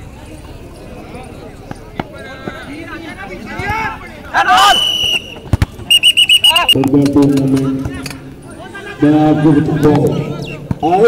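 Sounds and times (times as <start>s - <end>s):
referee's whistle blasts: 4.5s - 6.9s.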